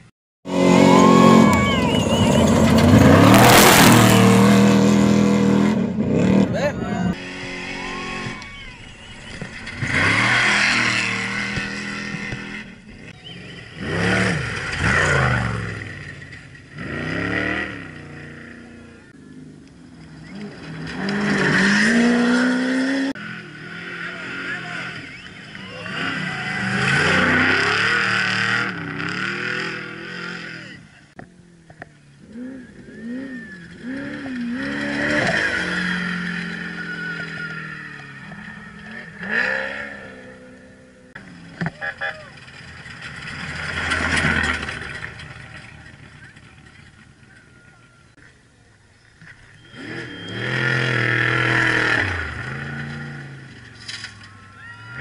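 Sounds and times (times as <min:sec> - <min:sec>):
race trucks speeding past: 0:00.5 - 0:19.2, 0:49.5 - 0:55.0.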